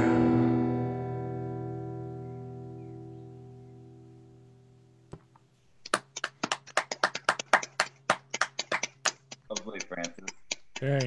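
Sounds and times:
quick hand clapping: 5.8 - 11.0.

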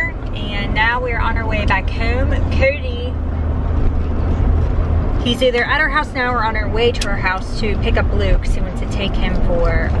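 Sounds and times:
car engine and road rumble: 0.0 - 10.0.

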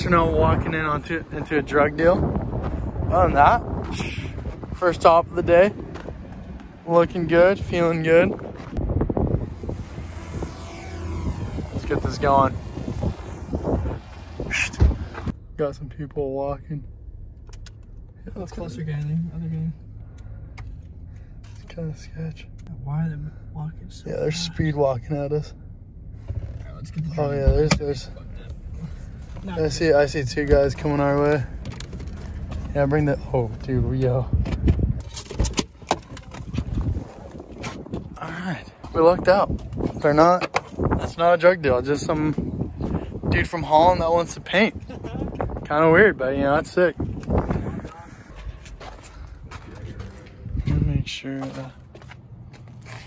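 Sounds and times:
wind buffeting microphone: 0.0 - 15.4, 23.3 - 51.2
drone propellers whining: 8.7 - 15.6.

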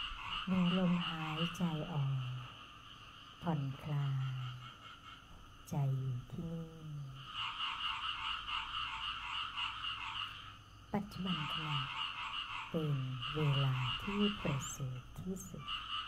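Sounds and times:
frogs croaking in pulses: 0.0 - 16.0
woman speaking softly: 0.5 - 2.5, 3.4 - 4.6, 5.7 - 7.2, 11.0 - 11.9, 12.8 - 15.7.

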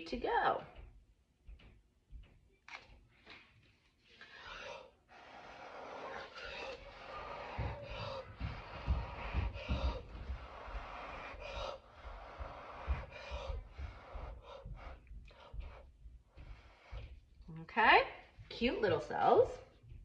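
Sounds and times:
forceful blowing breaths: 3.7 - 17.4
gasping breaths in: 4.0 - 17.2.

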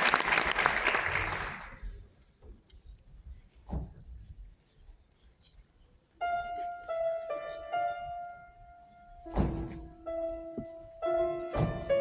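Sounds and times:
grand piano chord: 9.3 - 12.0.

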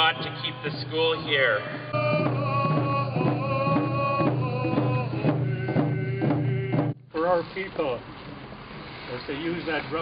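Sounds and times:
hand drums beating: 0.0 - 7.0
group singing long notes: 1.8 - 7.0.

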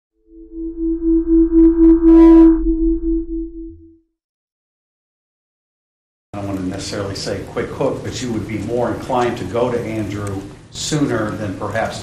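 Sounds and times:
low hum: 0.2 - 4.0
synthesized tone: 0.2 - 4.1.

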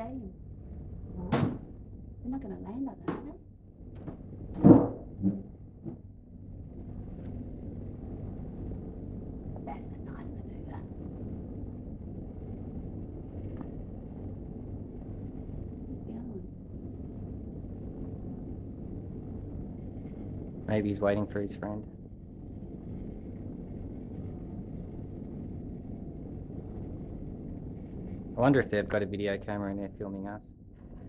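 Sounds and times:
muffled helicopter rumble: 0.0 - 31.0
sharp knock: 4.6 - 6.0.

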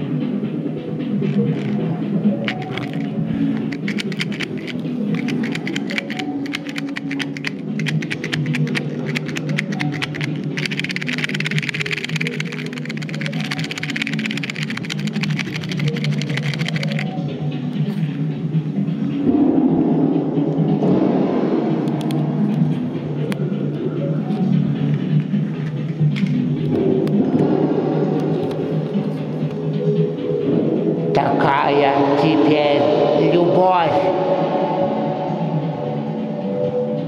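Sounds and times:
music with ticking beat: 0.0 - 31.2.

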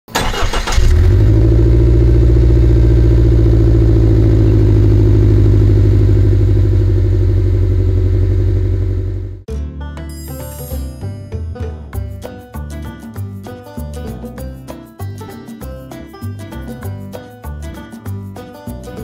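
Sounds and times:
car engine starting and idling: 0.1 - 9.5.

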